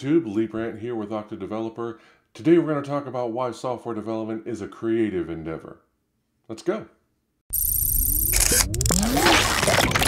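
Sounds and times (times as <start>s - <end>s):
glitchy electronic whoosh: 7.5s - 10.0s
sharp clicks: 7.5s - 10.0s.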